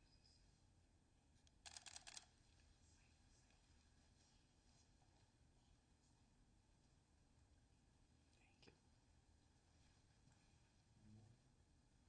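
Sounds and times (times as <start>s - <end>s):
camera shutter clicks: 1.7s - 2.2s.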